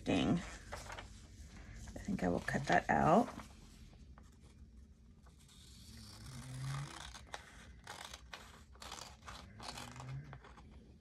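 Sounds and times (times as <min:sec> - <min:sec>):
scissors snipping paper: 0:05.7 - 0:10.6.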